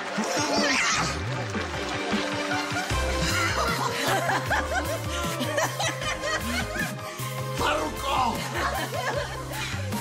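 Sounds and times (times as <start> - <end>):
background music with bass line: 1.0 - 10.0
man chuckling and laughing: 2.5 - 6.9, 8.4 - 10.0.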